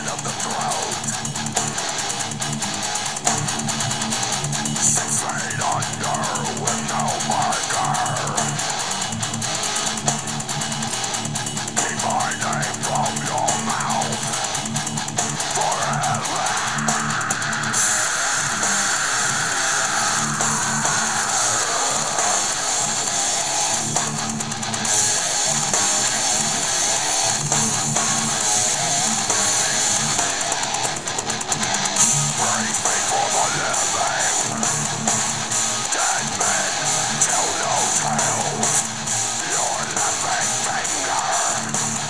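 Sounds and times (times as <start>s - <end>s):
distorted electric guitar riffs: 0.0s - 42.0s
heavy metal backing track: 0.0s - 42.0s.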